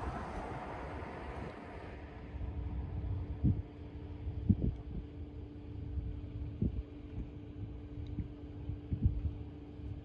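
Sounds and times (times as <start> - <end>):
faint steady hum: 0.0 - 10.0
wind rumbling on microphone: 0.0 - 10.0.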